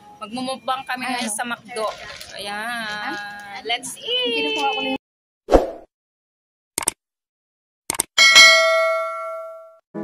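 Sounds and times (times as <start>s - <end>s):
notification bell ding: 8.2s - 9.8s.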